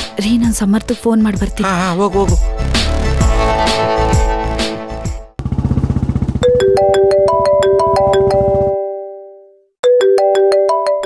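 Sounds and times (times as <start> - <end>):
phone ringtone melody: 6.4 - 11.0.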